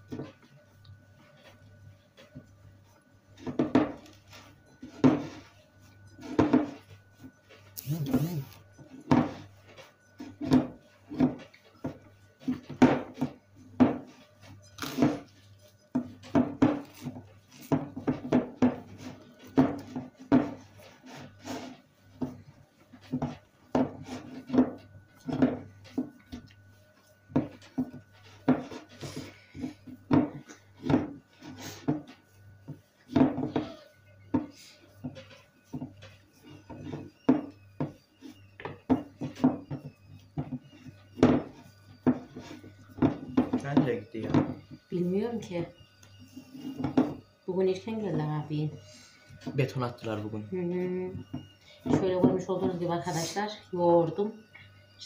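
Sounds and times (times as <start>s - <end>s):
dough kneading thuds: 0.0s - 55.0s.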